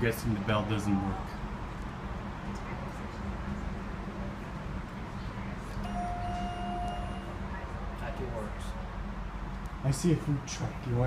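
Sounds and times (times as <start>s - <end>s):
elevator chime: 5.8s - 7.4s.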